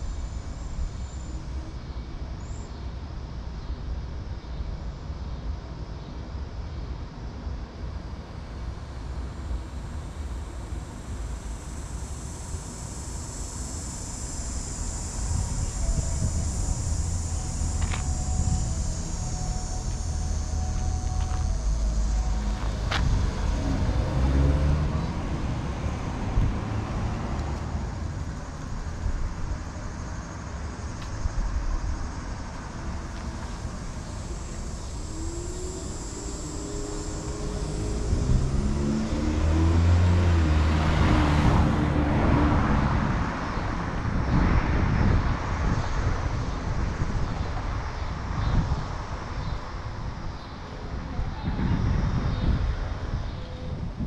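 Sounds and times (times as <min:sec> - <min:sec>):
wind rumble on microphone: 0:07.6 - 0:54.0
car driving past: 0:14.3 - 0:31.0, 0:32.1 - 0:46.2.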